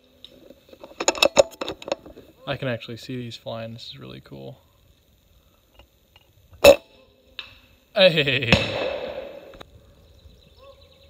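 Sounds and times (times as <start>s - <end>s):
air rifle shot crack: 8.5s - 9.6s.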